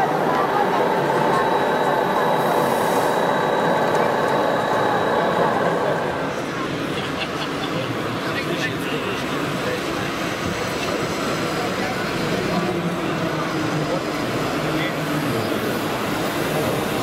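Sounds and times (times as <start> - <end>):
crowd chatter in a hall: 0.0 - 17.0
model construction vehicles running: 0.0 - 17.0.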